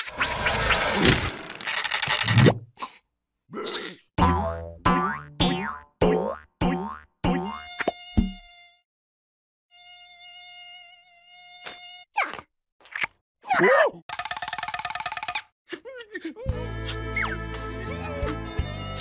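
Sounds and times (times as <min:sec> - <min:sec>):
cartoon mosquito buzzing whine: 0:07.4 - 0:08.9, 0:09.7 - 0:12.1, 0:18.4 - 0:19.0.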